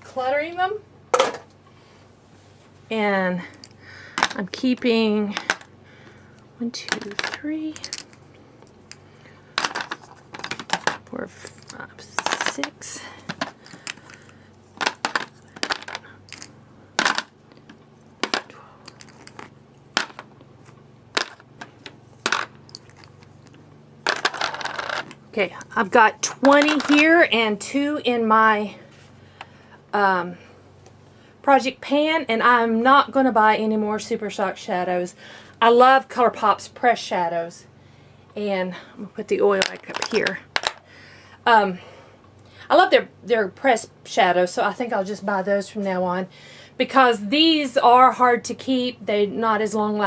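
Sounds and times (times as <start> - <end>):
plastic jars clattering: 6.9 - 8.2, 9.6 - 20.3, 21.2 - 25.2, 26.4 - 27.1, 39.6 - 40.8.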